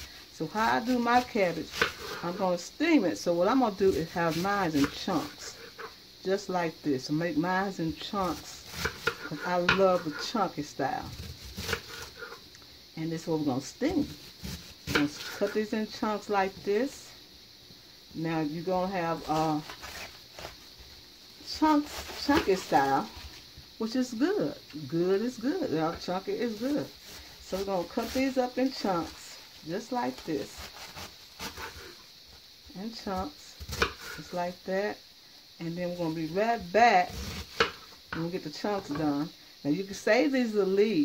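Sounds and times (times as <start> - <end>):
knife cutting cabbage: 0.5 - 2.6, 3.7 - 5.9, 8.0 - 10.4, 11.1 - 12.4, 13.9 - 15.7, 19.1 - 20.7, 21.5 - 23.4, 25.9 - 32.0, 33.1 - 34.4, 37.0 - 37.9
knife crunching through cabbage: 11.2 - 12.3, 30.2 - 32.0.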